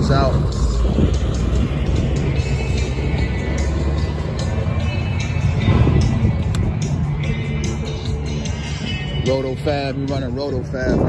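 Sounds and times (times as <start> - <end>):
wind rumble on microphone: 0.0 - 4.0, 5.4 - 8.1, 10.2 - 11.0
music playing: 0.0 - 11.0.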